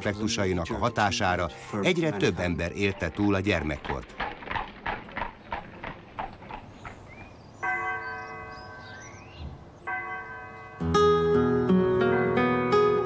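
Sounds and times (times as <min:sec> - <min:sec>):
horse hoofbeats clip-clopping: 0:02.6 - 0:07.4
church bell tolling: 0:07.6 - 0:13.0.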